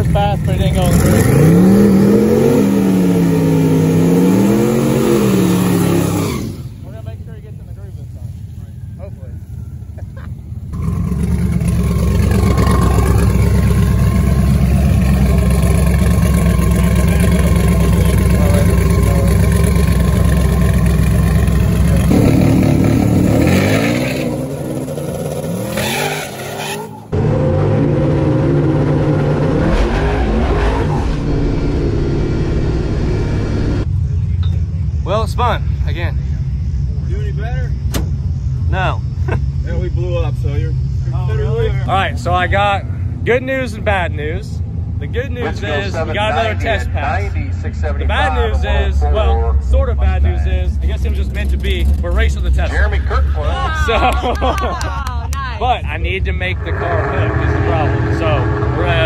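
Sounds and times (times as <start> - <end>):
engine idling rumble: 0.0 - 1.0, 6.6 - 23.4, 31.2 - 59.0
drag car engine revving: 0.0 - 7.2, 10.6 - 33.9, 35.0 - 54.3, 55.6 - 59.0.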